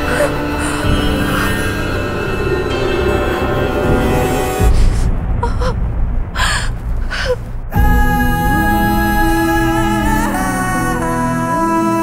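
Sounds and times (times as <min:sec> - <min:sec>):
deep low hits: 0:00.0 - 0:11.4
tense drama score music: 0:00.0 - 0:12.0
woman gasping: 0:06.4 - 0:07.5.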